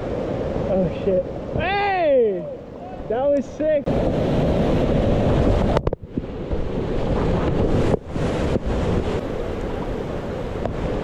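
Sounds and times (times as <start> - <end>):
whitewater rushing and splashing: 0.0 - 11.0.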